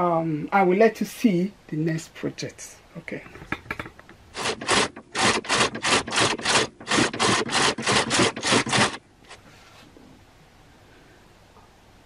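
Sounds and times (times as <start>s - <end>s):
rapid rubbing strokes: 4.3s - 9.9s.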